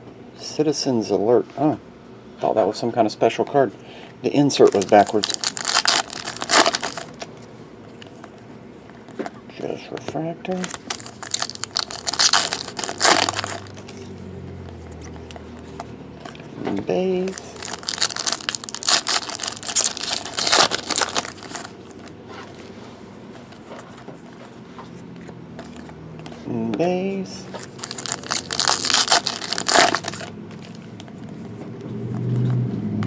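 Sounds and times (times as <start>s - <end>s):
foil wrapper crinkling: 4.5s - 7.3s, 10.5s - 14.1s, 17.2s - 22.2s, 27.5s - 31.0s.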